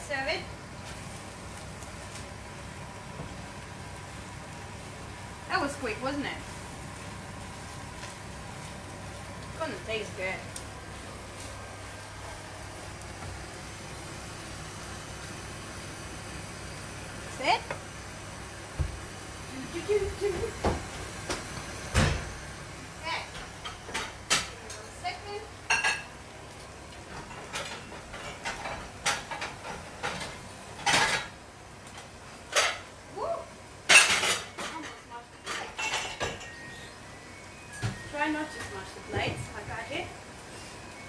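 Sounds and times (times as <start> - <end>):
steady low hum: 0.0 - 41.0
pans and utensils clattering: 27.2 - 31.4, 32.5 - 32.9, 33.9 - 36.8.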